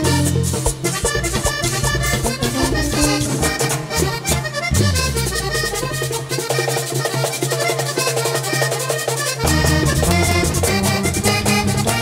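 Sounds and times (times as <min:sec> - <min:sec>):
bass guitar: 0:00.0 - 0:07.1, 0:09.4 - 0:12.0
button accordion: 0:00.0 - 0:12.0
hand percussion and drums: 0:00.0 - 0:12.0.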